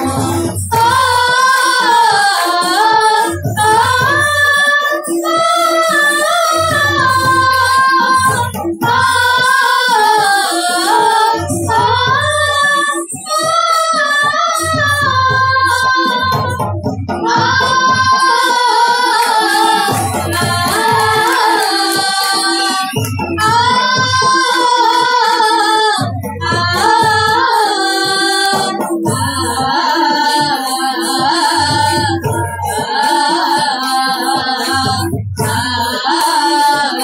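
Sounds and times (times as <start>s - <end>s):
low drum beats: 14.6s - 33.7s.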